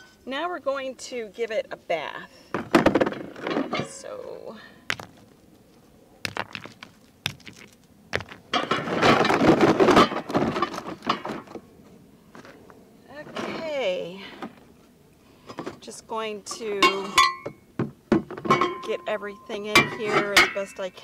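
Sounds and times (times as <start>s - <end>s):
metal parts rattling and scraping: 2.8s - 4.2s, 6.3s - 11.5s.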